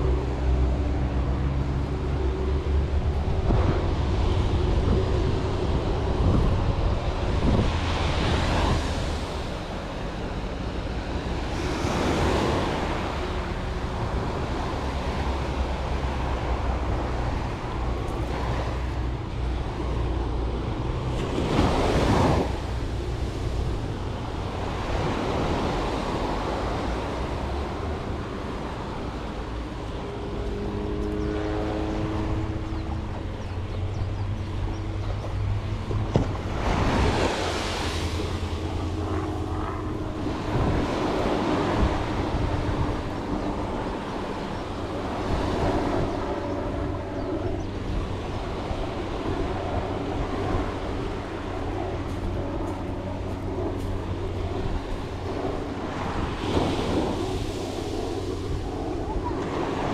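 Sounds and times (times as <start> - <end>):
surf washing up the beach: 0.0 - 46.8, 47.6 - 59.9.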